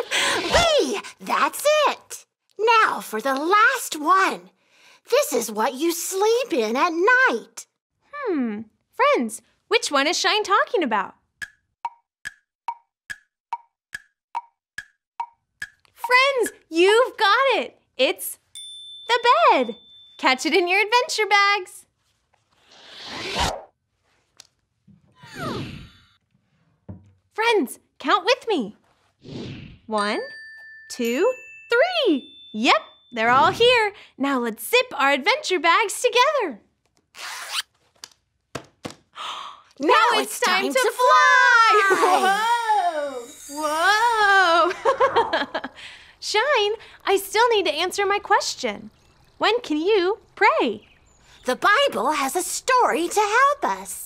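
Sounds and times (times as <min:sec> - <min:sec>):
wood-block ticks: 0:11.4 - 0:16.7
zipper being pulled shut: 0:37.1 - 0:37.7.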